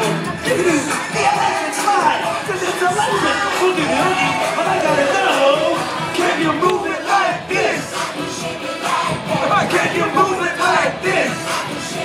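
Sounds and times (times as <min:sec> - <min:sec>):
crowd voices: 0:00.0 - 0:12.0
upbeat dance music: 0:00.0 - 0:12.0.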